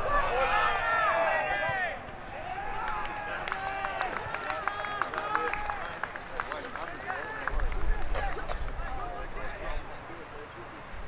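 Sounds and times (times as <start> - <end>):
distant players shouting: 0.0 - 9.8.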